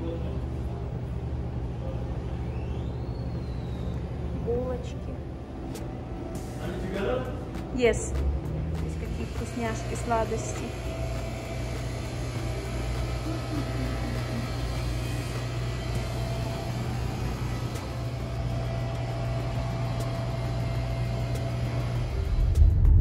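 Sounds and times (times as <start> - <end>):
low hum of shop interior: 0.0 - 22.5.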